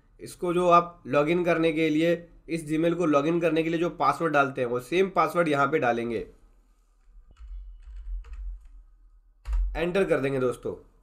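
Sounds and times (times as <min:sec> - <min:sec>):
keyboard typing: 0:07.0 - 0:10.0.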